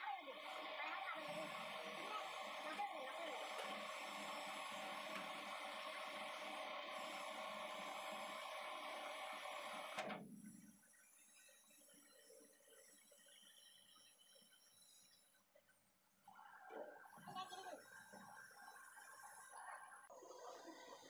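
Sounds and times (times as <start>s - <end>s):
metal lathe whining: 0.0s - 10.2s.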